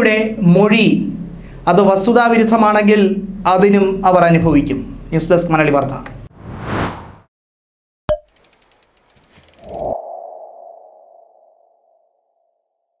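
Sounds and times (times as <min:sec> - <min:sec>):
quick run of ticks: 0:08.3 - 0:10.0.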